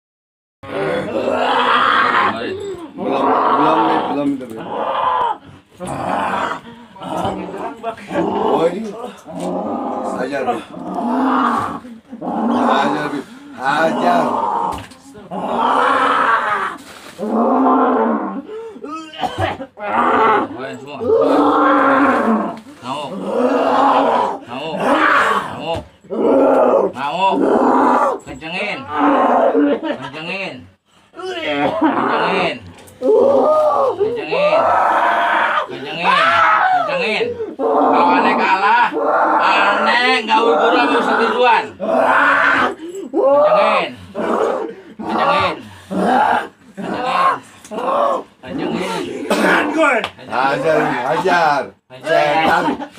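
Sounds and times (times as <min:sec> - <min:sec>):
person howling and groaning: 0:00.7 - 0:18.9, 0:19.8 - 0:28.2, 0:31.6 - 0:49.8.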